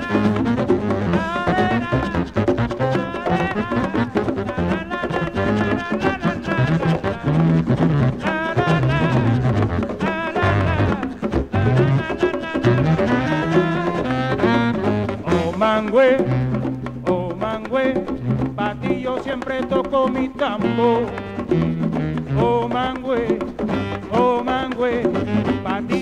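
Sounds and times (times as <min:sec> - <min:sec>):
wind instrument melody: 0:00.0 - 0:17.2, 0:20.5 - 0:26.0
hand percussion: 0:00.0 - 0:26.0.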